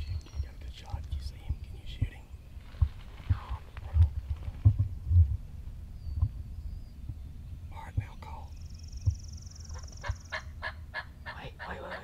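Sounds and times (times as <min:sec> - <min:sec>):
low handling bumps: 0:00.0 - 0:08.2
turkey yelping: 0:09.7 - 0:12.0.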